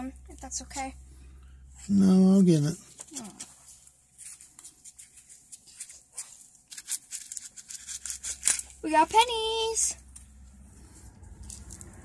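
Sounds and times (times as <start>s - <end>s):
coins clinking: 6.7s - 8.8s.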